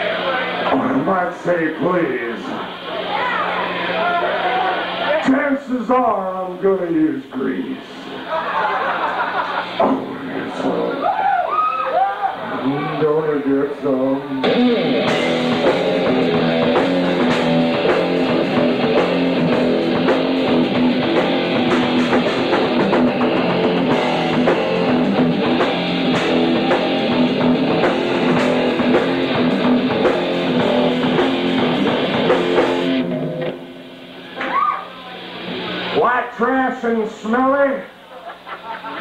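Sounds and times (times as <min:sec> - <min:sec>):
distorted electric guitar: 0:00.0 - 0:11.2, 0:12.3 - 0:39.0
man speaking into microphone: 0:00.7 - 0:02.6, 0:05.1 - 0:08.1, 0:12.6 - 0:14.4, 0:36.0 - 0:37.9
drum kit beat: 0:09.7 - 0:10.8, 0:14.4 - 0:34.6.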